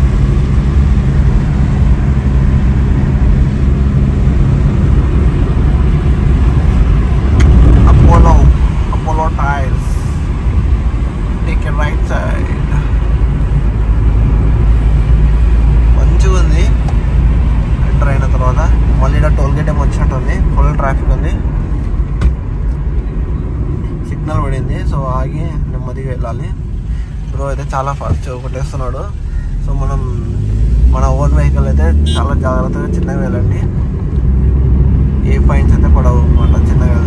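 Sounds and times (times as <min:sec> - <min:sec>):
car engine and tyre rumble: 0:00.0 - 0:37.0.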